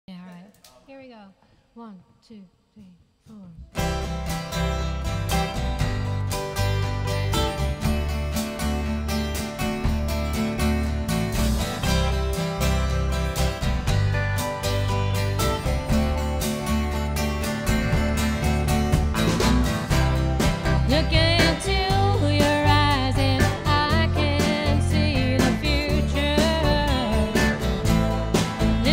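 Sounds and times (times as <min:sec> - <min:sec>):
live country band playing: 0:03.8 - 0:28.9
woman singing: 0:20.8 - 0:27.7.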